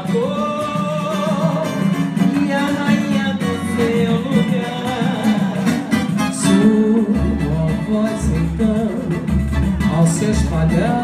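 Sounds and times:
woman singing: 0.0s - 5.9s
percussion: 0.0s - 11.0s
plucked strings: 0.0s - 11.0s.

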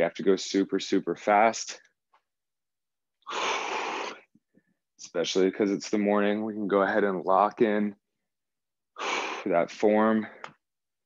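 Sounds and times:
man breathing heavily: 3.2s - 4.6s.

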